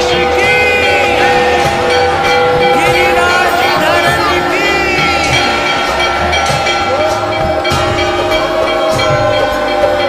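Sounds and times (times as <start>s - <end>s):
steady held tones: 0.4s - 9.1s
wavering bending tones: 0.9s - 9.6s.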